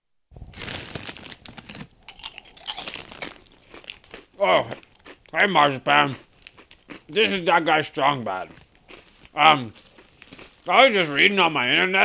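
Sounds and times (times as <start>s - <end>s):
crinkling and crunching: 0.4s - 11.4s.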